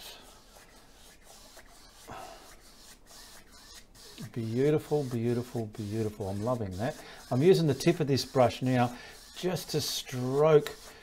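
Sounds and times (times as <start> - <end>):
brush rubbing paint on canvas: 0.0 - 11.0.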